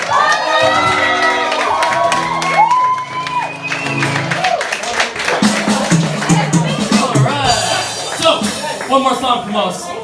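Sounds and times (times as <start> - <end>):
audience whooping and cheering: 0.0 - 6.5.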